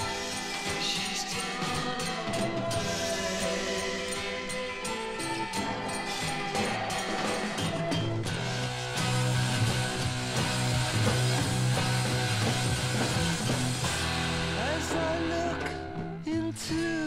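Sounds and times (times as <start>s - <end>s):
drums: 0.0s - 17.0s
guitar: 0.0s - 17.0s
psychedelic rock instrumental: 0.0s - 17.0s
sustained bass line: 8.3s - 16.5s.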